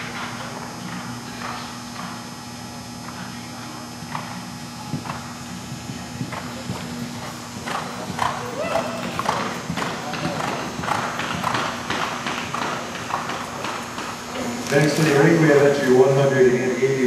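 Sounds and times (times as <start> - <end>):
faint voices: 0.5 - 11.5
horse hoofbeats cantering: 4.1 - 14.5.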